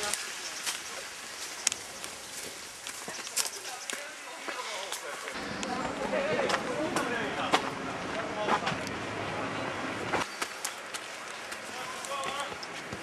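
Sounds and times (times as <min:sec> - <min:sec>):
footsteps on dirt path: 0:00.0 - 0:07.7, 0:10.2 - 0:13.0
voices talking: 0:03.0 - 0:12.9.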